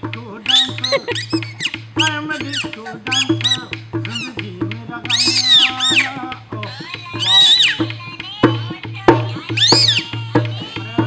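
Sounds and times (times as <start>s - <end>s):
music with low steady beat: 0.0s - 11.0s
squeaky puppet voice whistle: 0.5s - 4.3s, 5.1s - 7.8s, 9.6s - 10.1s.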